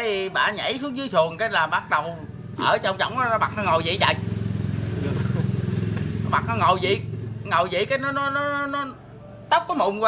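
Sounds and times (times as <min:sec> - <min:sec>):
vehicle engine humming: 0:00.6 - 0:10.0.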